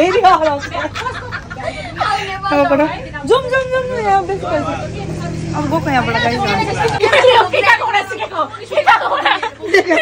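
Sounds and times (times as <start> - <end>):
people talking: 0.0 - 10.0
vehicle engine humming: 0.0 - 10.0.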